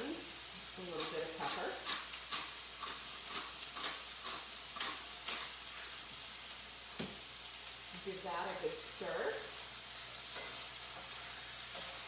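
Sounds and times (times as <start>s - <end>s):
chicken sizzling in a skillet: 0.0s - 12.0s
pepper mill grinding: 0.8s - 5.9s.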